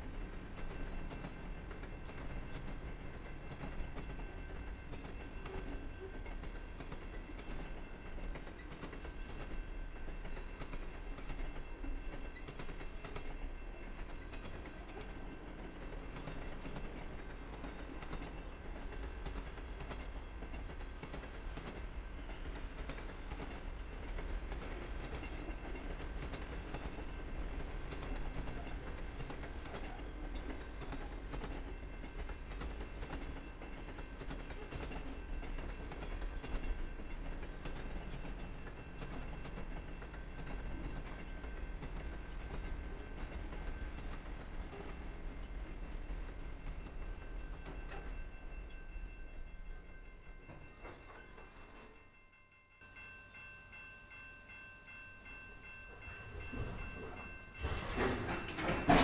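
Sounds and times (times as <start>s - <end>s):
train wheels rumbling on rail: 0.0s - 59.0s
clicks of wheels on rail joints: 55.9s - 59.0s.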